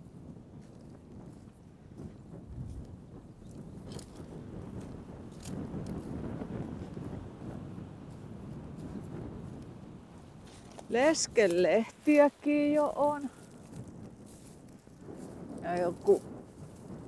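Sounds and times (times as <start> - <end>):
wind on microphone: 0.0 - 17.0
faint crackling clicks: 3.5 - 6.1.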